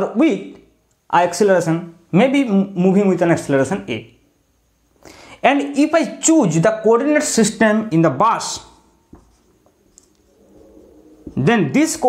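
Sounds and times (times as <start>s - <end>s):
marker pen drawing on whiteboard: 9.1s - 10.2s.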